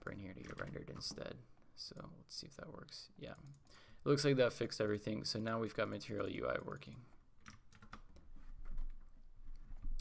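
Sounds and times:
computer keyboard keystrokes: 0.4 - 1.2, 7.4 - 9.0.

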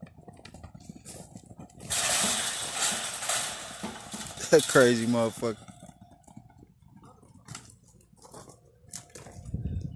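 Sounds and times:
hooves knocking on dirt: 0.0 - 9.9.

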